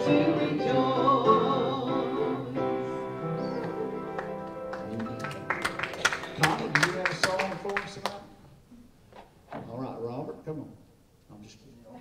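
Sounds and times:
congregation clapping: 0:03.6 - 0:08.4.

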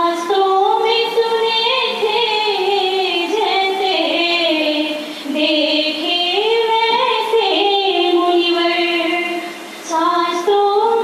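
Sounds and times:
high voice singing devotional song: 0:00.0 - 0:11.0
singer breath: 0:05.0 - 0:05.4.

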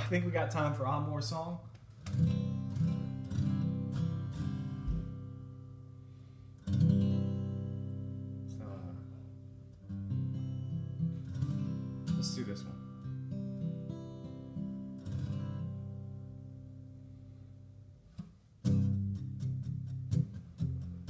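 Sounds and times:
acoustic guitar strumming: 0:02.0 - 0:21.0.

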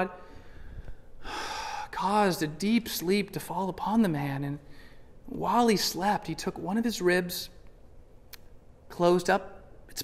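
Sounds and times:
man speaking: 0:00.0 - 0:00.2, 0:01.8 - 0:07.6, 0:08.9 - 0:10.0
man's sharp intake of breath: 0:00.2 - 0:02.0.

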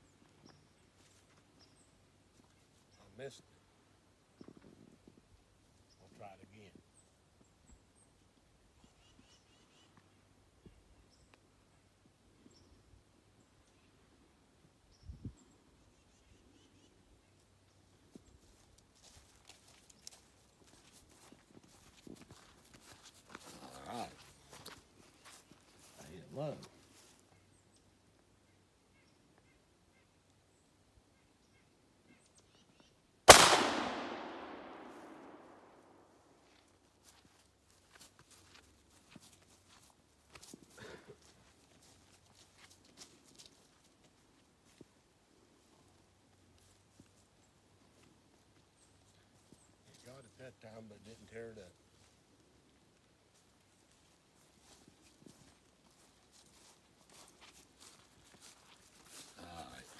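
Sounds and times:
shotgun shot echoing: 0:33.3 - 0:36.0.

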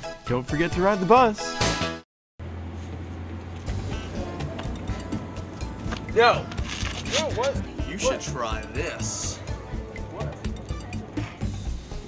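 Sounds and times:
faint background music: 0:03.7 - 0:12.0.

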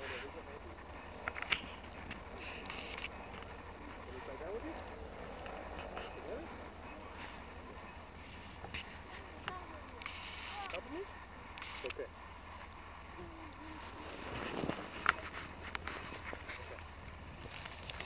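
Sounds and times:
wind rumble on microphone: 0:12.3 - 0:18.0
dog burrowing through snow: 0:13.2 - 0:18.0.

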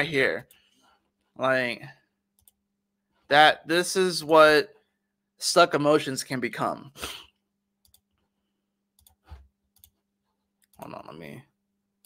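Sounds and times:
computer mouse clicks: 0:09.0 - 0:10.0.

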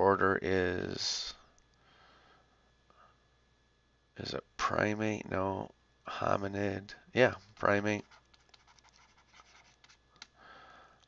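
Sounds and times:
stylus scratching on a tablet: 0:07.9 - 0:10.0.

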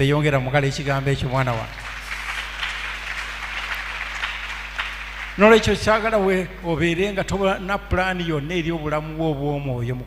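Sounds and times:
people clapping: 0:01.2 - 0:07.4.

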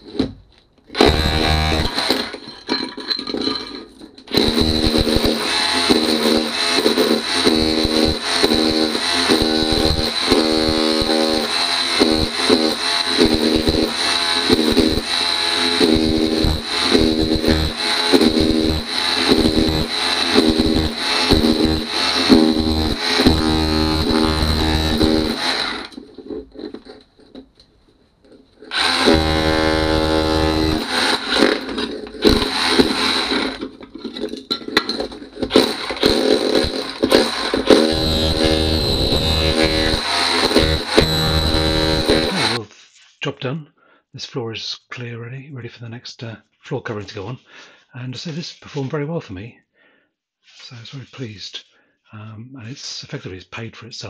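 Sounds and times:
hammer drill chiselling tiles: 0:00.0 - 0:27.4, 0:28.3 - 0:42.6.

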